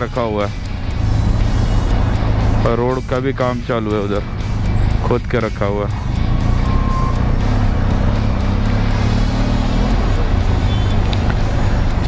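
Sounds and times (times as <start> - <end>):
background music: 0.0 - 12.0
motorcycle engine running: 0.0 - 12.0
rumble of surrounding traffic: 0.0 - 12.0.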